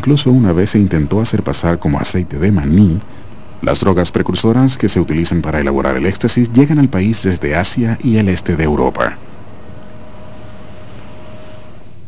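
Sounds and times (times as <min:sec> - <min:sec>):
low machinery rumble: 0:00.0 - 0:12.0.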